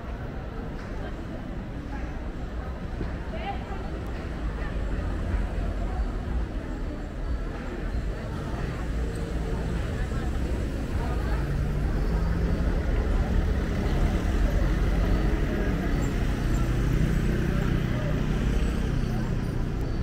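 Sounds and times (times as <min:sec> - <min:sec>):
passers-by talking: 0:00.0 - 0:20.0.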